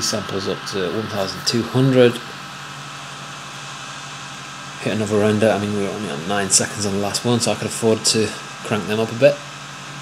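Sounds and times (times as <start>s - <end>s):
background hum and hiss: 0.0s - 10.0s
faint steady whine: 0.0s - 10.0s.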